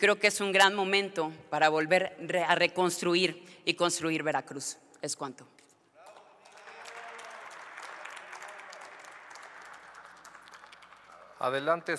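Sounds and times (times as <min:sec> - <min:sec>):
crowd applauding: 0:06.0 - 0:11.9.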